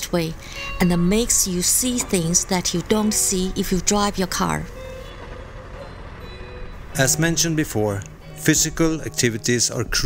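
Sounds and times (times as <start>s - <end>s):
city street traffic rumble: 0.0s - 10.0s
faint background music: 0.0s - 10.0s.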